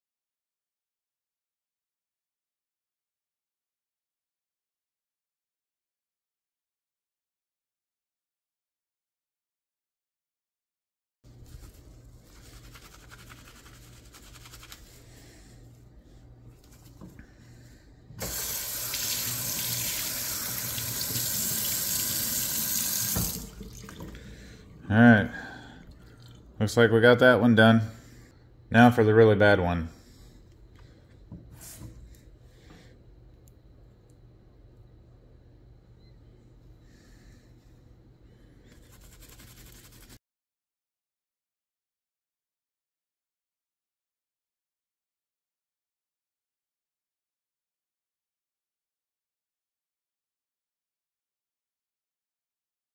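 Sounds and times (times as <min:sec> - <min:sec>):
fabric scrubbed by hand: 0:11.4 - 0:15.1, 0:38.7 - 0:40.2
faucet water running into sink: 0:18.2 - 0:24.3
faint low hum: 0:21.9 - 0:40.0.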